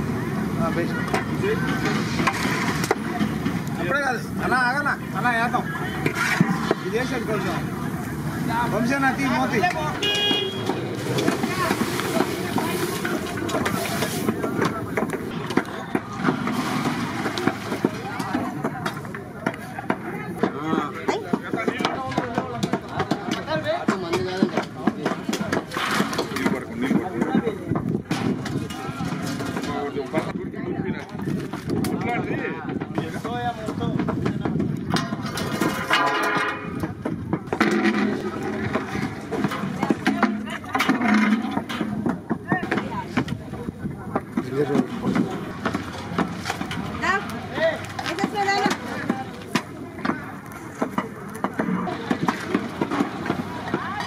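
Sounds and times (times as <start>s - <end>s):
people talking: 0.0s - 54.0s.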